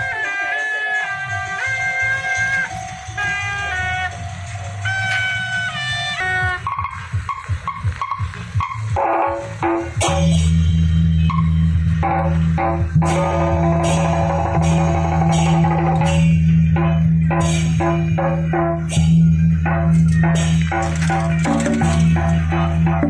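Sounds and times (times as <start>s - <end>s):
shrill double-reed horn melody: 0.0s - 7.1s, 9.0s - 23.0s
clashing percussion strikes: 0.0s - 23.0s.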